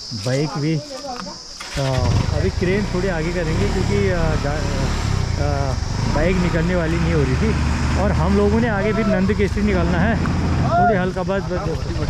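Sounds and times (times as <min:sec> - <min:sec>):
voices talking: 0:00.0 - 0:12.0
vehicle engine idling: 0:01.6 - 0:12.0.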